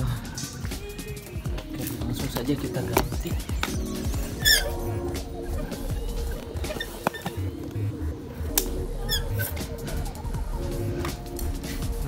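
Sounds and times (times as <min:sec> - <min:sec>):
background music held notes: 0:00.0 - 0:12.0
repeating chirping figure: 0:03.8 - 0:05.1.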